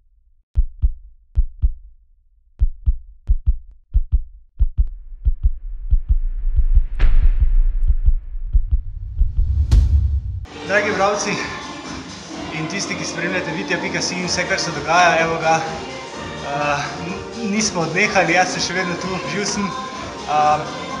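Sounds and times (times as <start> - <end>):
heartbeat thumps: 0.6 - 1.9, 2.6 - 10.5
low rumble: 4.5 - 10.6
whoosh: 4.9 - 10.6.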